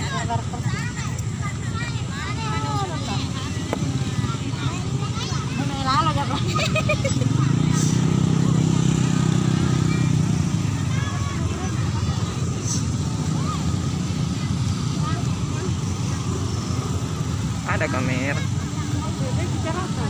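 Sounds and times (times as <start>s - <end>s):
crowd chatter: 0.0s - 20.0s
engine running: 0.0s - 20.0s.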